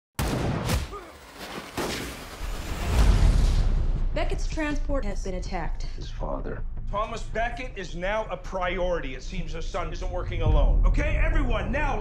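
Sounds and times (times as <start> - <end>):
heavy boom: 2.4 - 4.7, 10.0 - 12.0
deep rumble: 2.5 - 12.0.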